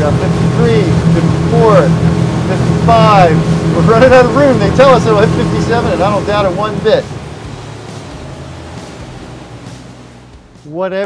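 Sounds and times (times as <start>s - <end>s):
rush of wind and water: 0.0s - 10.2s
boat engines humming: 0.0s - 11.0s.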